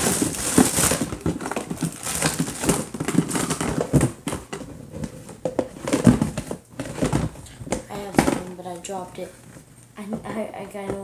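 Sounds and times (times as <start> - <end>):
plastic containers knocking: 0.0 - 8.8, 10.0 - 11.0
plastic bags crinkling: 0.0 - 9.0.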